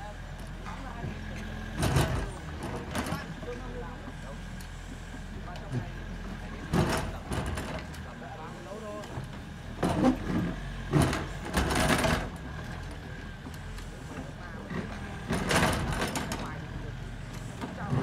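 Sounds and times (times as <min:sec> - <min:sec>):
excavator diesel engine running: 0:00.0 - 0:18.0
excavator knocks and scrapes: 0:00.6 - 0:03.4, 0:05.7 - 0:08.0, 0:09.2 - 0:13.0, 0:14.6 - 0:18.0.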